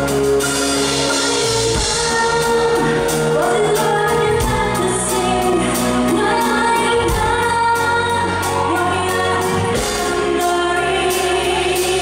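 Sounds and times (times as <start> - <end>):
band playing: 0.0 - 12.0
woman singing pop song: 0.8 - 12.0.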